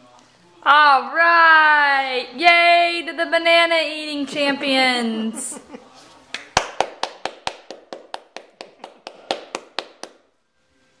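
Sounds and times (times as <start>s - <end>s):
person clapping quickly: 6.3s - 10.3s.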